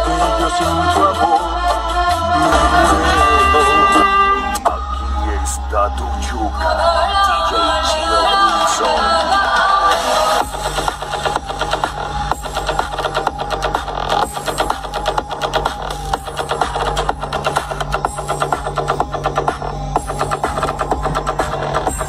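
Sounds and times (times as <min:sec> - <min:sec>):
electronic dance music through subwoofers: 0:00.0 - 0:22.0.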